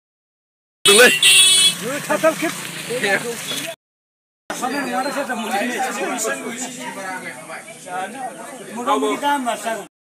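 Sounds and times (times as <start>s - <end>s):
vehicle horn honk: 0.8s - 1.8s
man shouting: 0.9s - 1.4s.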